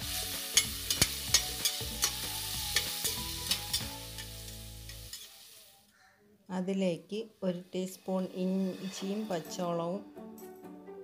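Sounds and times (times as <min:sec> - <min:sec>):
onions sizzling in a pot: 0:00.0 - 0:05.9, 0:07.1 - 0:09.7
spatula scraping a pot: 0:07.9 - 0:09.6.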